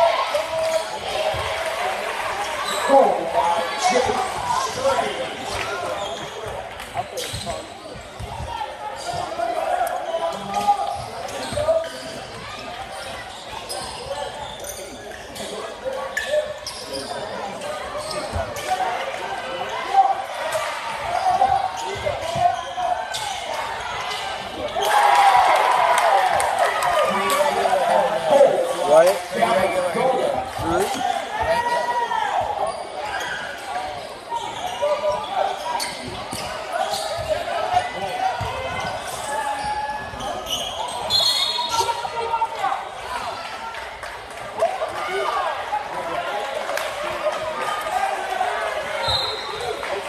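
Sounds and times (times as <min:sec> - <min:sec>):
crowd voices hubbub: 0:00.0 - 0:50.0.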